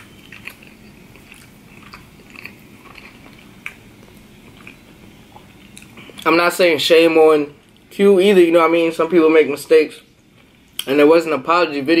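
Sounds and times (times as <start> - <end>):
person chewing: 0.0 - 6.3.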